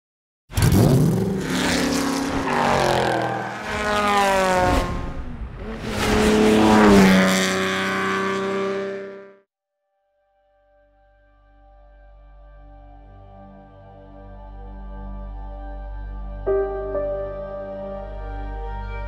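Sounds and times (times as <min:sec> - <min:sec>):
car engine revving: 0:00.5 - 0:09.4.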